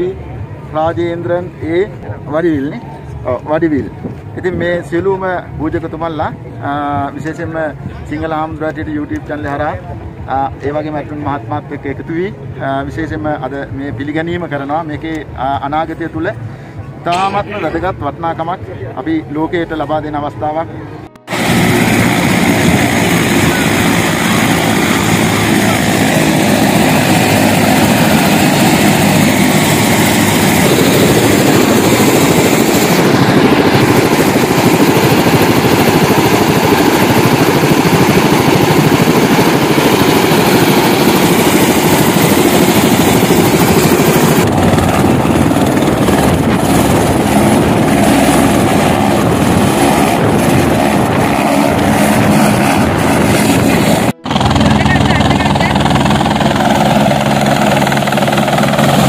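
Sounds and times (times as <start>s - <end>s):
helicopter turbine and rotor noise: 0.0s - 59.0s.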